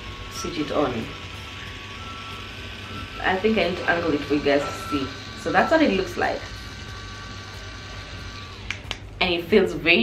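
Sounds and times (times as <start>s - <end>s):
electric motor hum: 0.0s - 10.0s.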